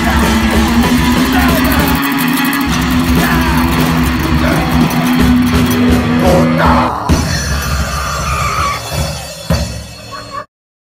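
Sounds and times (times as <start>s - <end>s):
electric guitar low notes: 0.0s - 9.8s
bass guitar: 0.0s - 10.5s.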